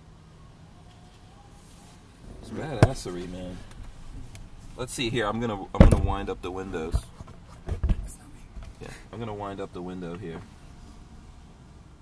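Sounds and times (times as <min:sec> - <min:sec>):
low thumps: 0:02.1 - 0:08.8.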